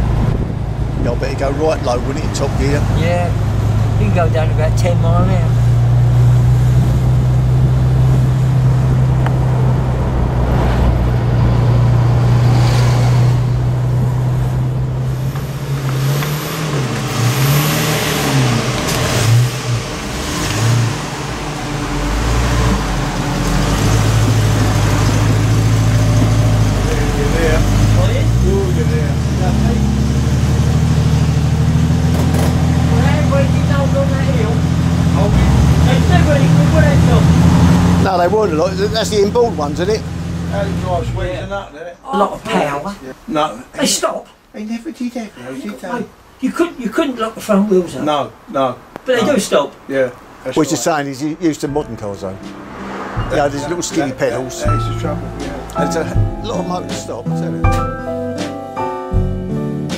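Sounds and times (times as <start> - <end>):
car engine running: 0.0 - 41.7.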